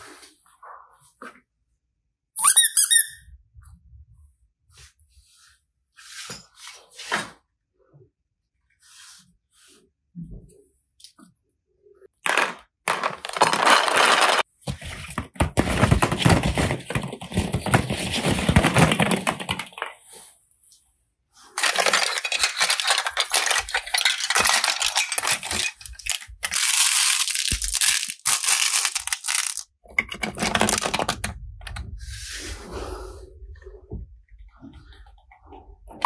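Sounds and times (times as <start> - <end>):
plastic toy balls clattering: 12.2 - 20.0, 21.6 - 31.8.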